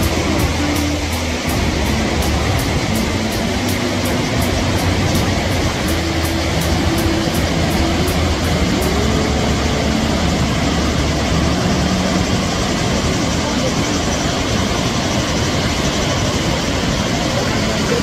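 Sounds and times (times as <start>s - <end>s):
faint voices: 0.0s - 18.0s
water rushing over waterfall: 0.0s - 18.0s.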